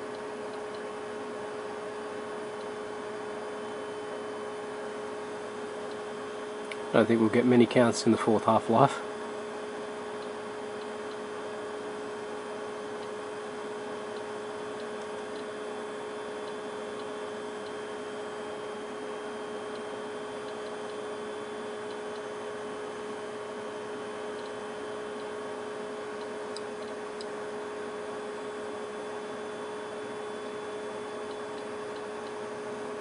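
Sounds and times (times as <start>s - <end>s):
electrical hum: 0.0s - 33.0s.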